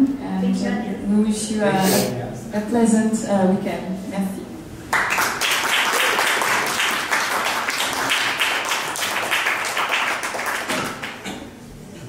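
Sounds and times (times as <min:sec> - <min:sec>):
audience applauding: 0:04.9 - 0:11.3.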